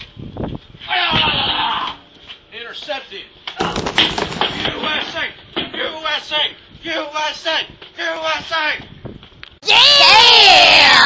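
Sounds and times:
young people shouting: 9.6s - 11.0s.

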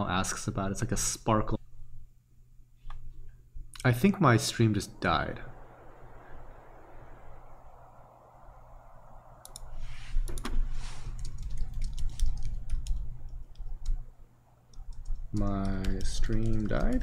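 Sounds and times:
low steady hum: 0.0s - 17.0s
keyboard and mouse clicking: 9.4s - 14.1s, 14.7s - 17.0s.

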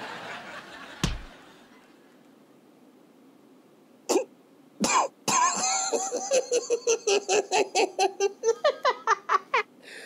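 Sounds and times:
man coughing: 4.1s - 5.7s.

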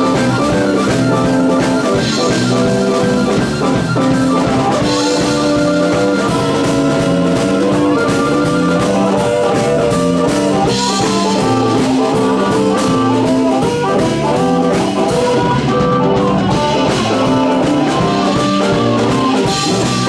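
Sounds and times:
amplified harmonica: 0.0s - 20.0s
drum kit: 0.0s - 20.0s
electric guitar: 0.0s - 20.0s.

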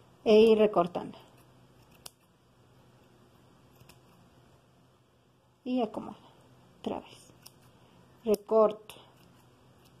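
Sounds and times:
scissors snipping yarn: 1.2s - 2.4s, 3.7s - 4.3s, 7.1s - 10.0s.

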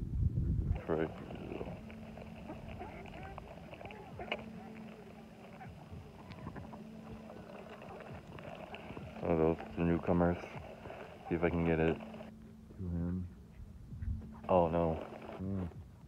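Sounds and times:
ducks quacking softly: 0.7s - 13.4s.

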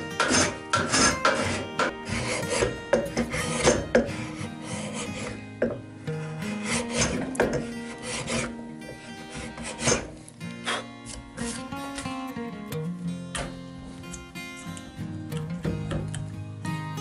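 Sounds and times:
hand plane scraping wood: 0.0s - 11.7s.

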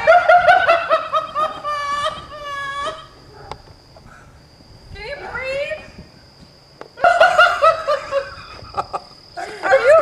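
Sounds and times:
person laughing hard: 0.0s - 3.1s, 7.0s - 10.0s.

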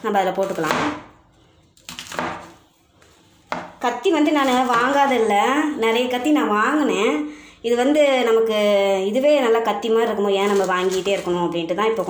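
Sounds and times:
knife chopping on wooden board: 0.4s - 1.1s, 1.8s - 2.6s, 3.5s - 3.8s.

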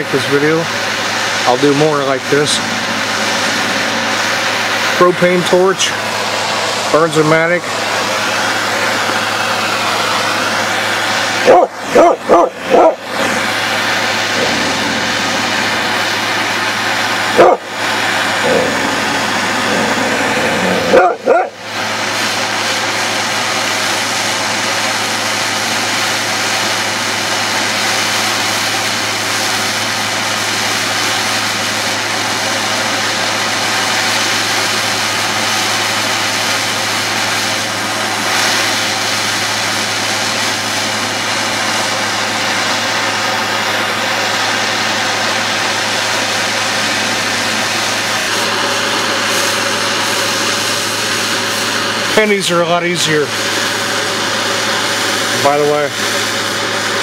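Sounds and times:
propane torch hissing: 0.0s - 57.0s.

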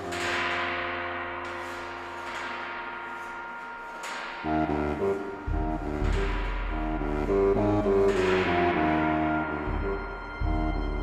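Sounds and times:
gong-like metallic note ringing: 0.0s - 11.0s.

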